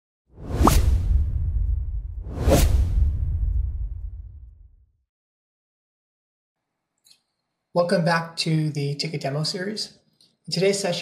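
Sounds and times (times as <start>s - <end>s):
whoosh sound effects: 0.4s - 4.7s
deep low rumble: 0.7s - 4.9s.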